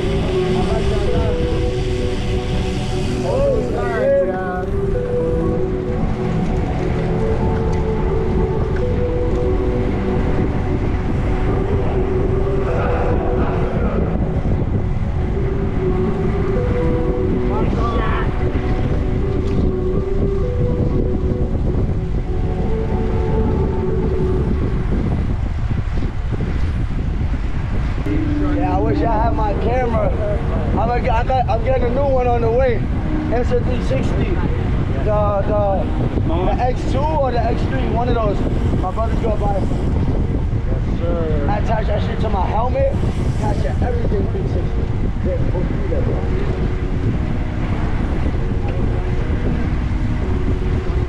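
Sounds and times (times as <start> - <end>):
tune of held notes: 0.0 - 26.9, 28.0 - 51.0
wind buffeting microphone: 0.0 - 51.0.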